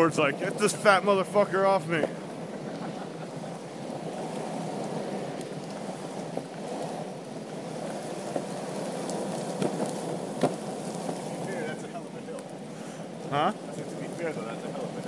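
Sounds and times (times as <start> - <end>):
skateboard wheels rolling on asphalt: 0.0 - 15.0.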